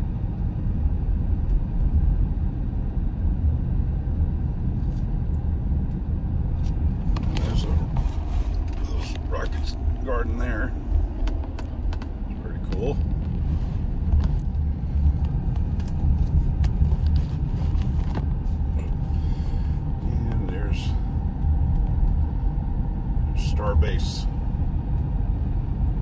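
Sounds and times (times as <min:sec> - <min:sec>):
car engine and tyre rumble: 0:00.0 - 0:26.0.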